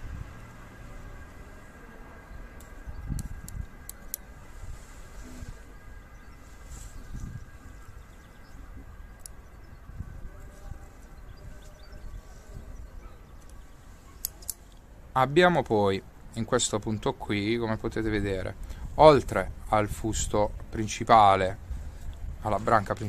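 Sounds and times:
pruning scissors blade clicks: 0:02.6 - 0:04.3, 0:14.2 - 0:14.8.

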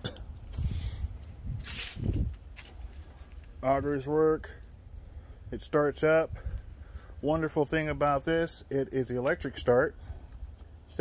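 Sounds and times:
low steady rumble: 0:00.0 - 0:11.0
soft footsteps on concrete: 0:00.4 - 0:03.6.

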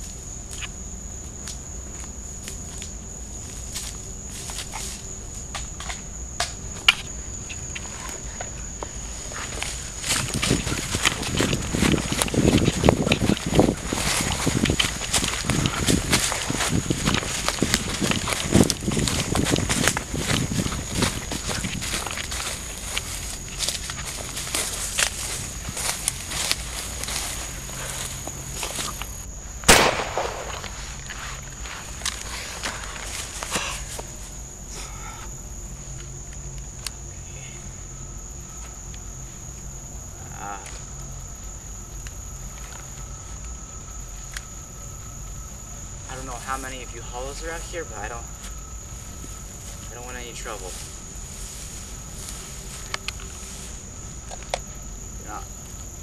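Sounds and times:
high insect drone: 0:00.0 - 0:56.0
footsteps through undergrowth: 0:01.9 - 0:05.8, 0:08.8 - 0:34.5, 0:47.3 - 0:55.0
leaves and twigs snapping: 0:09.5 - 0:31.2, 0:52.3 - 0:53.4
sharp bang: 0:29.7 - 0:31.0.

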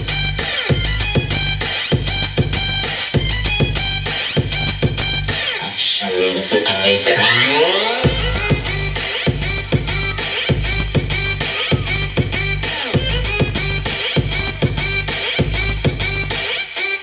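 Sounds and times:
electronic dance music: 0:00.0 - 0:17.0
rising synth sweeps: 0:05.8 - 0:11.4.

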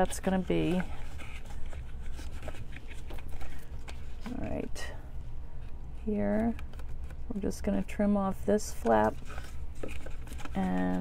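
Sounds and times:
cardstock rustling: 0:00.0 - 0:04.7, 0:06.2 - 0:11.0
steady low hum: 0:00.0 - 0:11.0.

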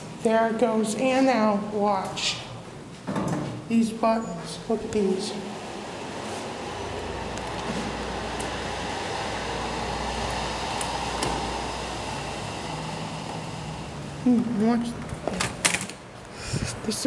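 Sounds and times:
elevator car hum: 0:03.8 - 0:16.2.

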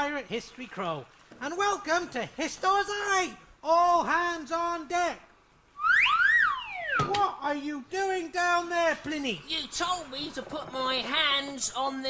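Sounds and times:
slide whistle sound effect: 0:05.8 - 0:07.2.

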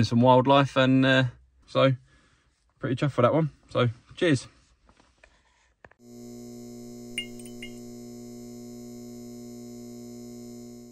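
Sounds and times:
steady electrical hum: 0:06.0 - 0:10.9.

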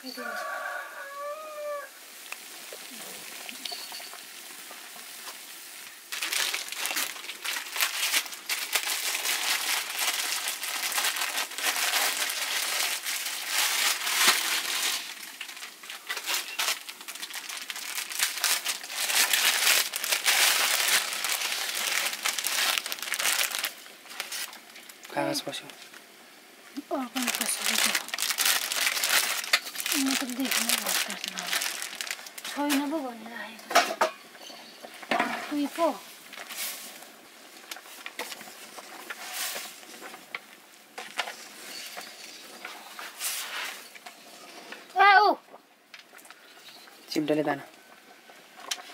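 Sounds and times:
plastic wrapper crinkling: 0:06.1 - 0:26.0, 0:26.8 - 0:33.2, 0:34.9 - 0:44.2.

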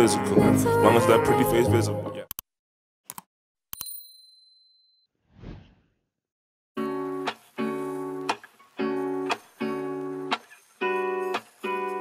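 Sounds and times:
strummed acoustic guitar music: 0:06.8 - 0:12.0.

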